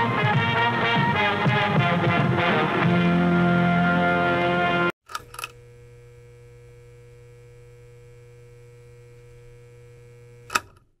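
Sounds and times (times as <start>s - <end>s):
sharp click: 5.1s - 5.6s, 10.4s - 10.9s
switch clicks: 5.1s - 5.6s, 10.4s - 10.9s
neon sign electrical hum: 5.1s - 11.0s.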